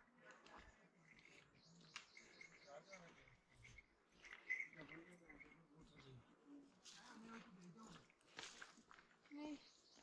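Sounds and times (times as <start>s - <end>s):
footsteps on pavement: 6.8s - 10.0s.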